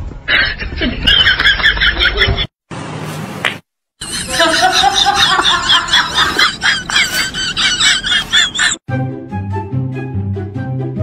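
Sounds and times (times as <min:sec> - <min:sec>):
high-pitched snickering laughter: 0:04.0 - 0:08.8.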